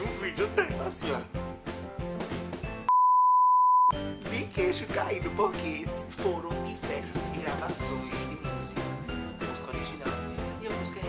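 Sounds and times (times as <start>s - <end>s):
background music: 0.0s - 2.9s, 3.9s - 11.0s
censor bleep: 2.9s - 4.0s.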